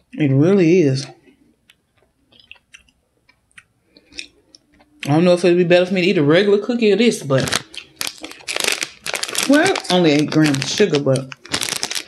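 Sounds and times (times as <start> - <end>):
person chewing crunchy food: 7.5 - 10.0, 11.4 - 12.0.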